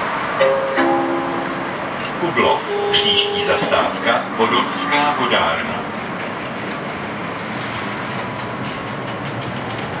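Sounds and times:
tram rumbling: 0:00.0 - 0:10.0.

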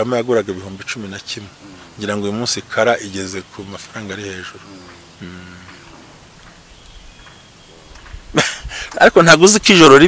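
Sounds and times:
man talking: 0:00.0 - 0:06.0, 0:08.8 - 0:10.0
low background hiss: 0:00.0 - 0:10.0.

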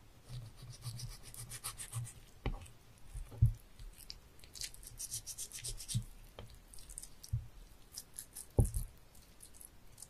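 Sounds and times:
knife scraping fish: 0:04.6 - 0:06.1.

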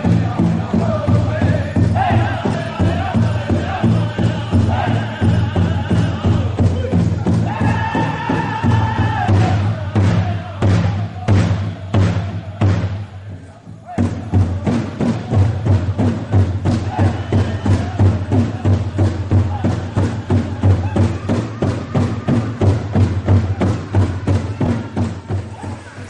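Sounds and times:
big drum beaten fast: 0:00.0 - 0:13.2, 0:13.9 - 0:26.0
people singing: 0:00.0 - 0:26.0.

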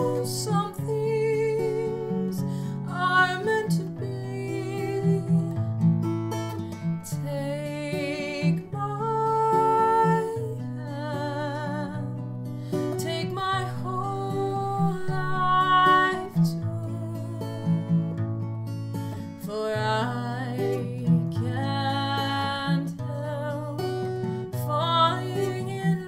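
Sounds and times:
woman singing ballad: 0:00.0 - 0:05.9, 0:06.7 - 0:18.2, 0:19.1 - 0:26.0
acoustic guitar: 0:00.0 - 0:26.0.

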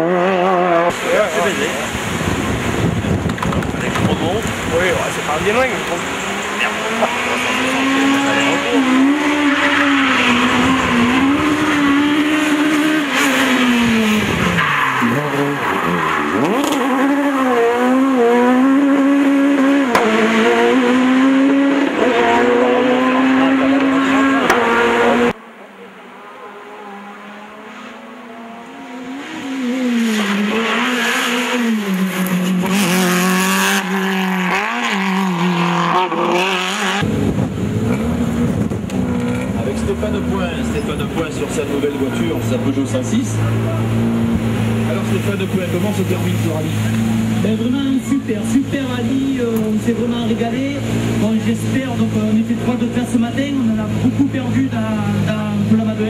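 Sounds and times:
rally car engine revving: 0:00.0 - 0:56.0
rally car passing and shifting gear: 0:00.0 - 0:56.0.

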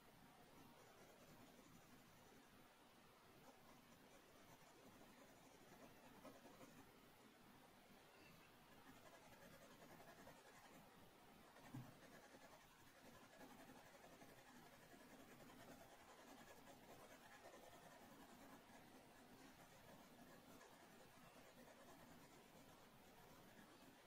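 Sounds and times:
pencil scratching on paper: 0:00.8 - 0:02.2, 0:03.4 - 0:06.8, 0:08.7 - 0:10.8, 0:11.5 - 0:24.0.

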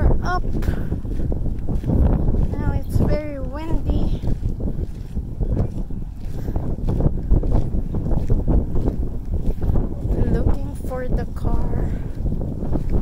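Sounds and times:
wind on microphone: 0:00.0 - 0:13.0.

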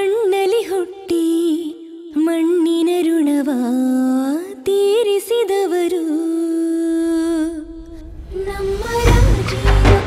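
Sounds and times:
low rumble: 0:07.4 - 0:10.0.

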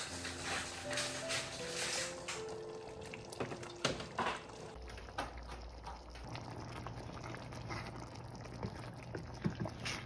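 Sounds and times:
sauce bubbles popping: 0:04.8 - 0:10.0.

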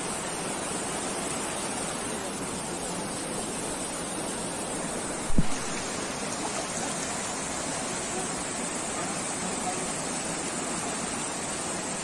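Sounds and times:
mountain stream rushing: 0:00.0 - 0:12.0
low thump: 0:05.3 - 0:05.6.

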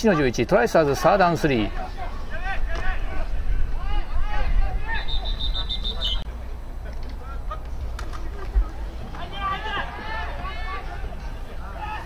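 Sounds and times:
players' voices: 0:00.0 - 0:12.0
referee's whistle pulses: 0:04.9 - 0:06.2.

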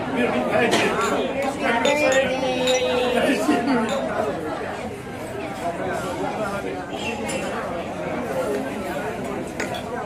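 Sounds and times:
people chatting: 0:00.0 - 0:10.0.

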